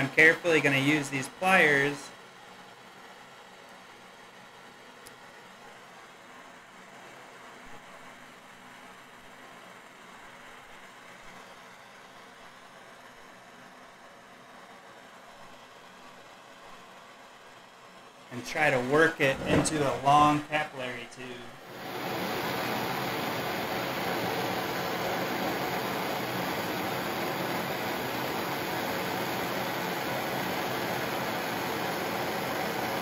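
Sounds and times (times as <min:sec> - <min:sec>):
hand torch burning with hiss: 0:21.6 - 0:33.0.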